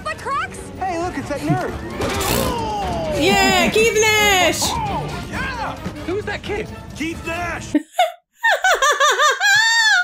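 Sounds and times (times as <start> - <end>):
woman laughing hard: 7.8 - 10.0.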